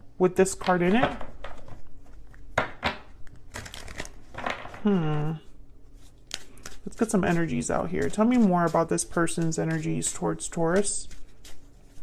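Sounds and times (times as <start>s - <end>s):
cards shuffling: 0.5s - 4.8s, 6.0s - 12.0s.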